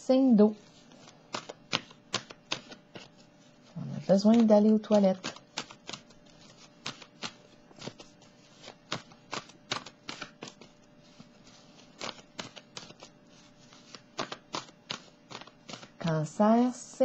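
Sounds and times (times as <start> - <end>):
cards being shuffled: 0.6 - 16.0.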